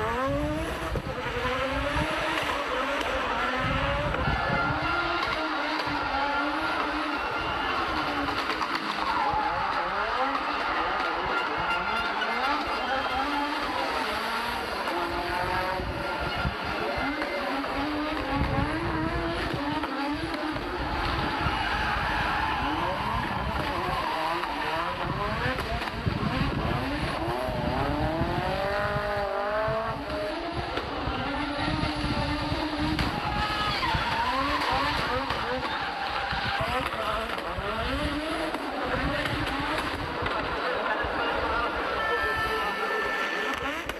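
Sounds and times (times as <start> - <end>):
rally car engine revving: 0.0 - 43.9
tyres squealing: 19.7 - 25.1.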